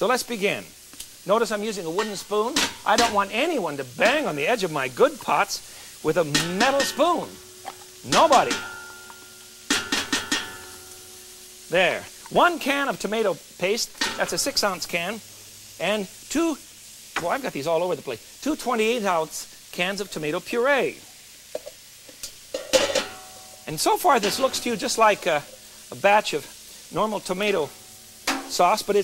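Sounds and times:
wooden spoon knocking in metal can: 0:06.3 - 0:10.8.

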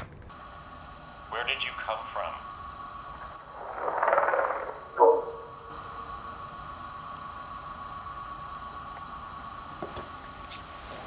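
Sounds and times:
steady hum with high tones: 0:00.0 - 0:11.0.

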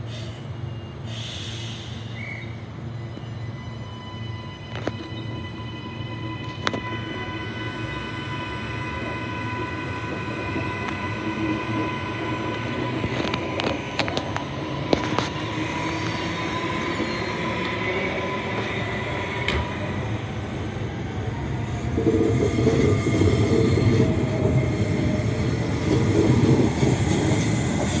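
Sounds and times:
electric train rumbling: 0:00.0 - 0:28.0
traction motor whine: 0:03.1 - 0:28.0.

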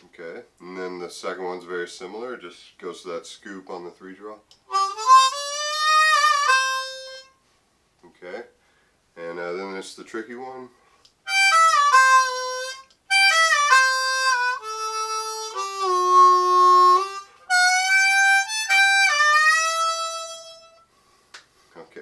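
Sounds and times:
harmonica with bent notes: 0:04.7 - 0:07.5, 0:11.2 - 0:21.1.

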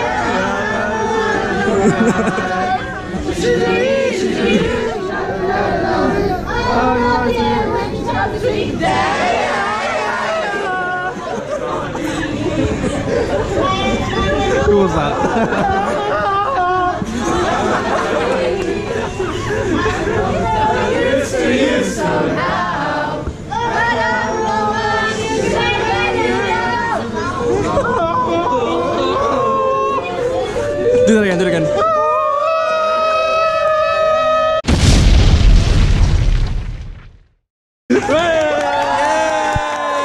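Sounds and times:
crowd singing unaccompanied: 0:00.0 - 0:30.7
chatter: 0:00.0 - 0:33.1
explosion boom with deep rumble: 0:34.6 - 0:37.4.

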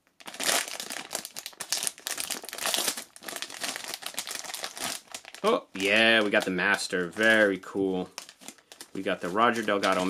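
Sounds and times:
foil bag crinkling: 0:00.1 - 0:10.0.

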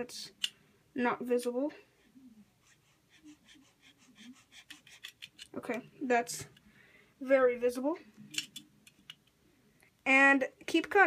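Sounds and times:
knife blade sawing foam: 0:02.7 - 0:05.1.

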